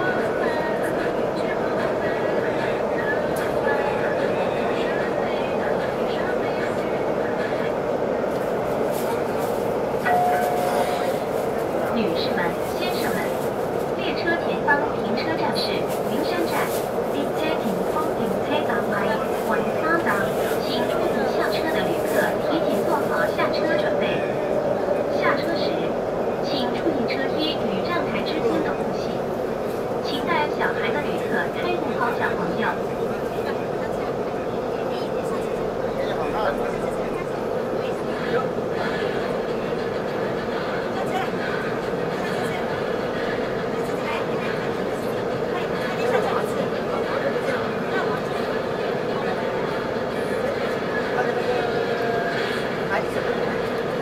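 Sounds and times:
train running hum and rumble: 0:00.0 - 0:54.0
voices: 0:00.0 - 0:54.0.

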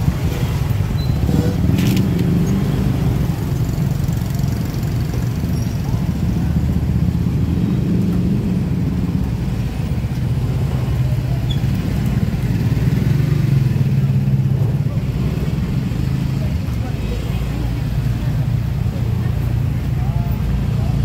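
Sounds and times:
car and motorcycle engines running: 0:00.0 - 0:21.0.

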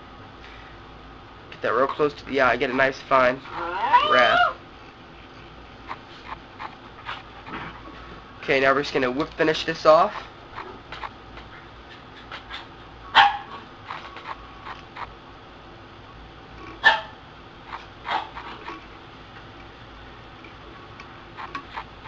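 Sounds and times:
dog barking: 0:13.1 - 0:14.4, 0:16.8 - 0:18.8.

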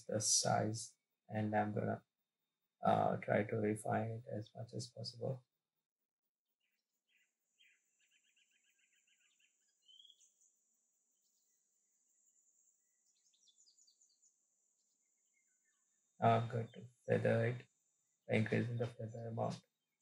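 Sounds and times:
soft bird chirps: 0:06.5 - 0:17.6
bird trill: 0:06.6 - 0:11.6.

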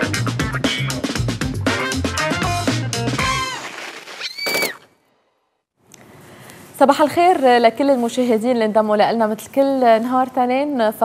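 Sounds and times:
intro music: 0:00.0 - 0:03.5.

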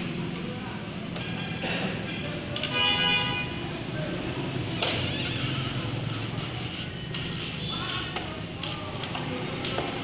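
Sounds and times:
vehicle horn: 0:02.6 - 0:03.6.

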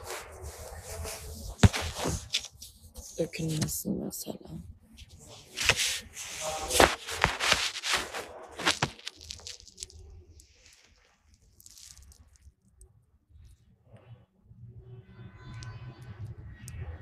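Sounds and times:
phone rubbing against coat: 0:00.0 - 0:03.6, 0:05.0 - 0:09.7.

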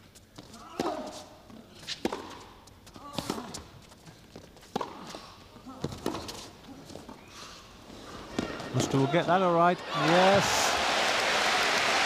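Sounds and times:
rackets striking tennis ball: 0:00.6 - 0:03.7, 0:04.6 - 0:06.5.

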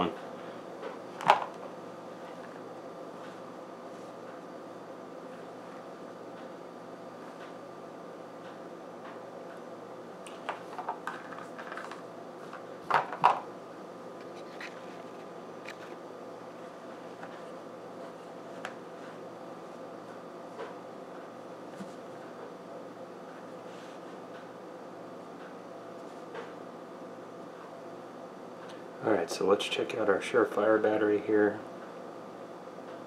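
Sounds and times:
faint steady hum: 0:00.0 - 0:33.0.

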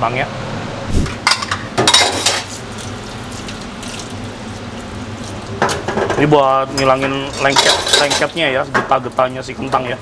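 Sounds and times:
tap water running into bowl: 0:02.8 - 0:05.8.

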